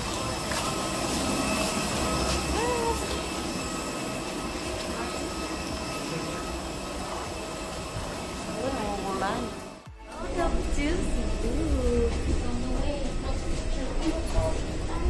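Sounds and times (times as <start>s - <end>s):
aircraft machinery drone: 0.0s - 15.0s.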